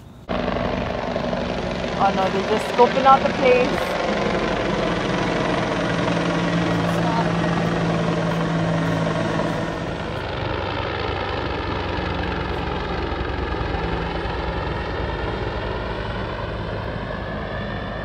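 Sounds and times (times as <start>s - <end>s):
helicopter flying overhead: 0.0s - 18.0s.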